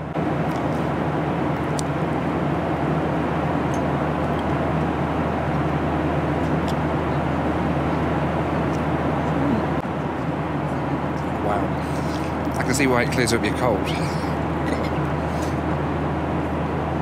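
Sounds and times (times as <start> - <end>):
airliner cabin noise: 0.0 - 17.0.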